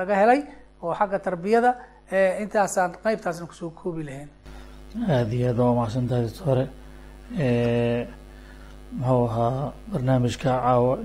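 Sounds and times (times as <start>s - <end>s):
low mains hum: 0.0s - 11.0s.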